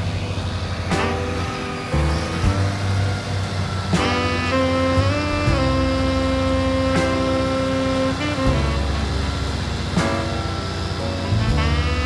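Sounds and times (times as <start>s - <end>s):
truck engine running: 0.0s - 12.0s
background music: 0.8s - 12.0s.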